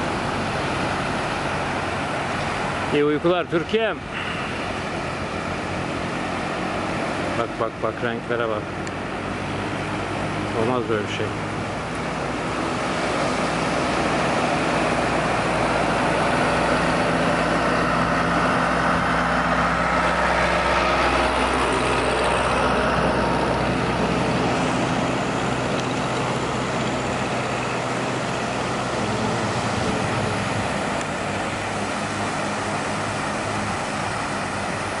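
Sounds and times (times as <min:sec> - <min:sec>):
surf washing onto beach: 0:08.7 - 0:35.0.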